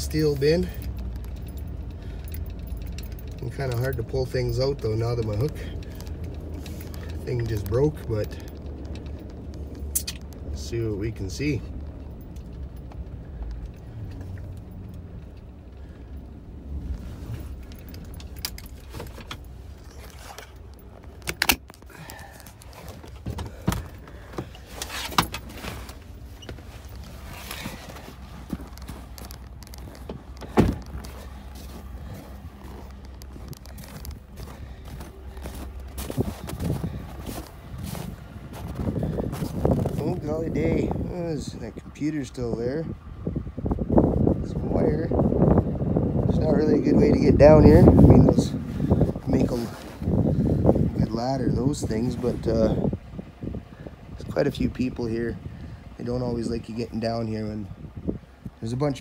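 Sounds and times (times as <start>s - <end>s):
truck engine humming: 0.0s - 59.0s
sharp clicks and knocks: 0.4s - 10.6s, 17.6s - 34.6s.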